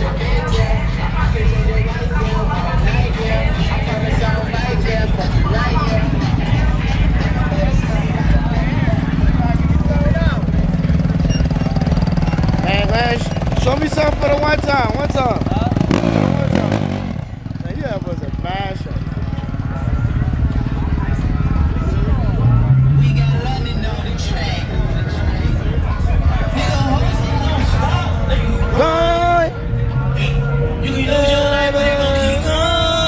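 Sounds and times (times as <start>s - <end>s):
crowd chatter: 0.0s - 33.0s
steady engine rumble: 0.0s - 33.0s
quad bike engine revving: 7.2s - 21.3s.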